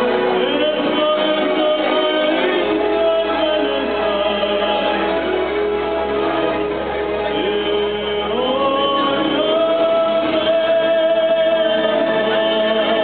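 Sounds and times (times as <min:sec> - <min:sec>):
man singing into a microphone: 0:00.0 - 0:06.3, 0:07.0 - 0:13.0
musical accompaniment: 0:00.0 - 0:13.0.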